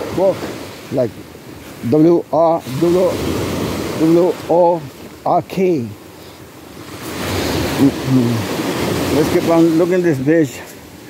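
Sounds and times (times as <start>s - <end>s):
small waves washing on sand: 0.0s - 11.0s.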